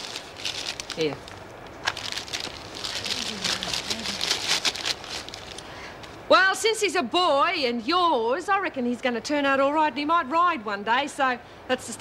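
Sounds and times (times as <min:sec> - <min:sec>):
wrapping paper crinkling: 0:00.0 - 0:06.2.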